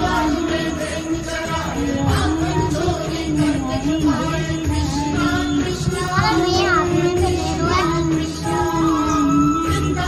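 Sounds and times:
instrumental backing: 0.0 - 10.0
person singing devotional song: 0.0 - 10.0.

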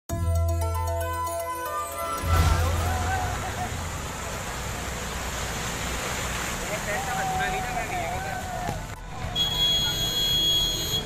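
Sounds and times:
car wading through water: 1.7 - 11.0
floodwater rushing: 1.7 - 11.0.

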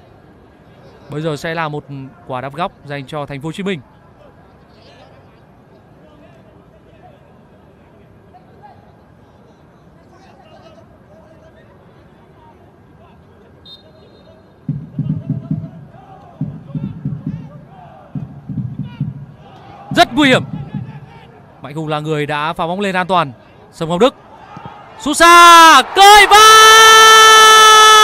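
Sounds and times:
low murmur of fans: 0.0 - 25.1
loud deep drum beating: 14.7 - 17.6, 18.2 - 21.2
faint scattered shouts: 15.8 - 18.2, 18.8 - 21.6, 24.2 - 28.0.

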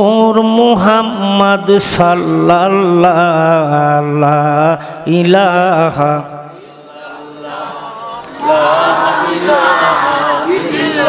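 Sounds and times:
man chanting into microphone: 0.0 - 7.5.

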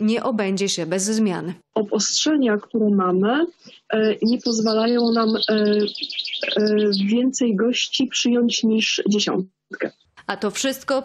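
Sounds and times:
faint high chirping: 3.5 - 10.1.

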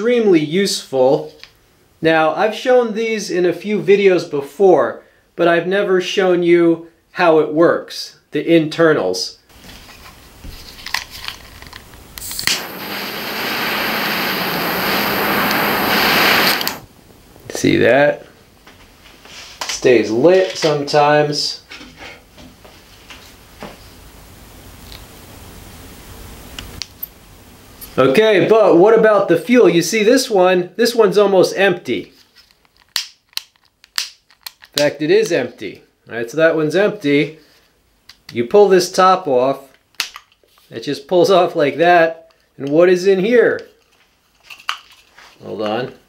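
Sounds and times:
pocket torch clicking on: 10.9 - 16.9
hissing jet flame: 12.1 - 16.9.

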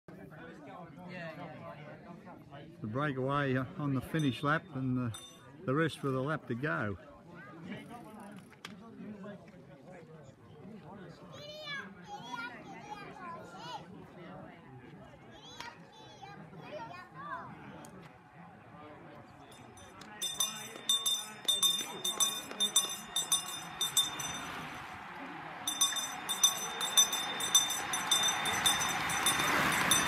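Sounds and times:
bell ringing rapidly: 5.1 - 5.4, 19.5 - 25.0, 25.7 - 30.0
voices: 17.8 - 30.0
rush of approaching riders: 19.5 - 30.0.

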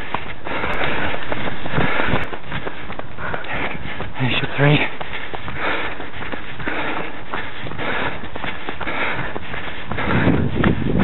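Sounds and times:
footfalls on earth path: 0.0 - 11.0
runner breathing hard: 0.0 - 11.0.

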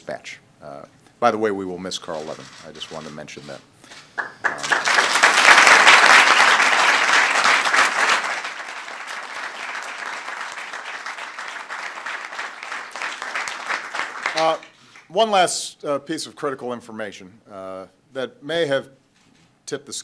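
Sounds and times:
audience applauding: 4.2 - 15.1.

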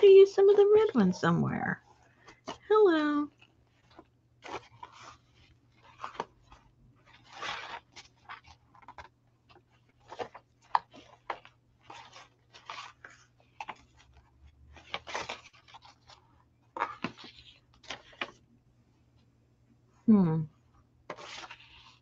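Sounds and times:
paper rustling and crinkling: 1.8 - 18.5, 21.0 - 22.0.

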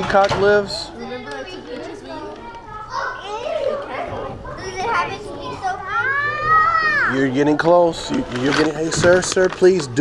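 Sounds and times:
young children chattering: 0.0 - 10.0.

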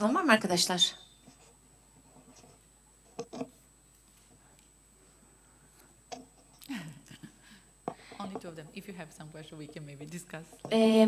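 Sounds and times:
person speaking: 8.0 - 11.0.

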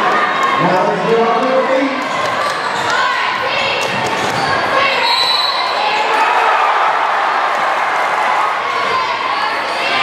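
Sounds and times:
crowd voices echoing: 0.0 - 10.0.

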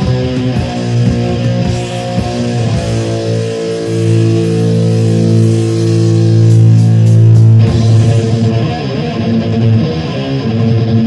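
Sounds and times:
distorted electric guitar: 0.0 - 11.0
metal band playing: 0.0 - 11.0.

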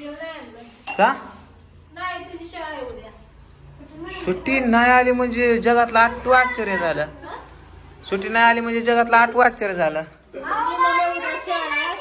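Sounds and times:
metal tumbler clinking on tile: 0.8 - 1.2
people talking: 8.1 - 12.0.

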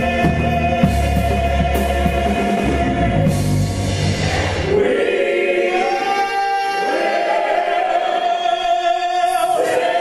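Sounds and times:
men's choir singing: 0.0 - 10.0.

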